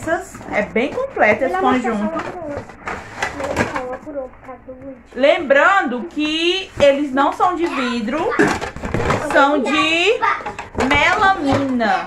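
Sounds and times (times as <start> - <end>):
woman talking: 0.0 - 2.2, 5.1 - 8.5, 9.2 - 10.2, 10.8 - 12.0.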